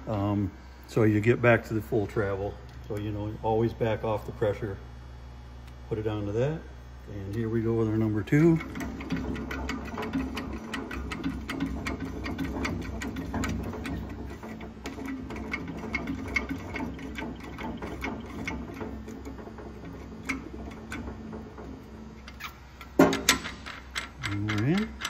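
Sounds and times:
rapid irregular clicking: 8.0 - 25.0.

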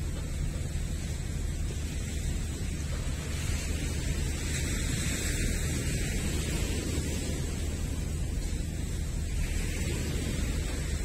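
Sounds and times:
small waves washing ashore: 0.0 - 11.0
wind on microphone: 0.0 - 11.0.

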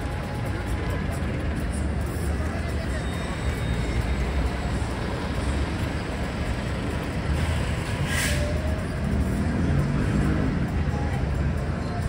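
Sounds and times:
low rumble of road traffic: 0.0 - 12.0
bus passing close by: 3.4 - 11.5.

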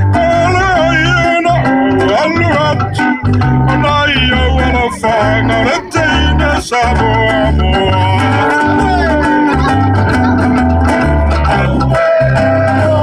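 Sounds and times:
group of singers: 0.0 - 13.0
guitars: 0.0 - 13.0
plucked bass line: 0.0 - 13.0.

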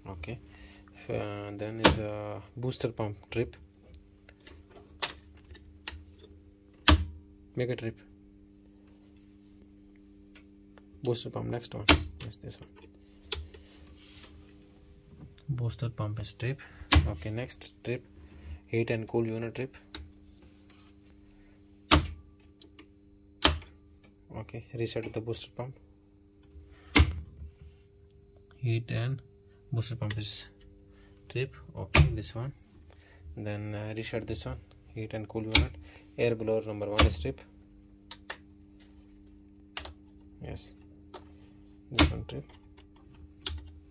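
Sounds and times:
steady electrical hum: 0.0 - 43.9
control panel switch click: 35.5 - 35.8, 41.9 - 42.3.

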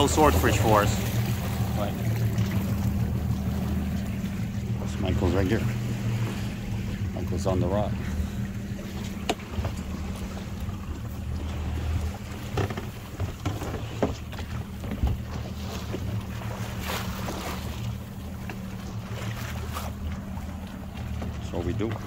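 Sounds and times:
outboard motor running: 0.0 - 22.0
water splashing against boat: 0.0 - 22.0.

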